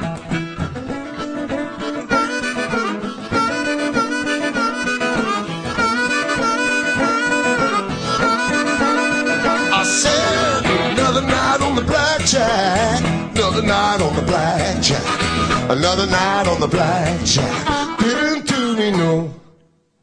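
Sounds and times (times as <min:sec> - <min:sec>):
blues harmonica: 0:00.0 - 0:19.4
electric guitar chords: 0:00.0 - 0:19.6.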